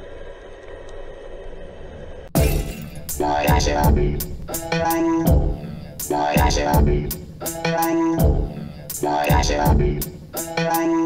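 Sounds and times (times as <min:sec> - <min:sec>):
loud crash: 0:02.4 - 0:07.6.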